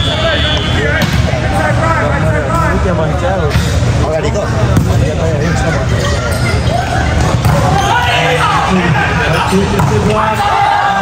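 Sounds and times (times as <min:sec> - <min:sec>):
voices talking and calling: 0:00.0 - 0:11.0.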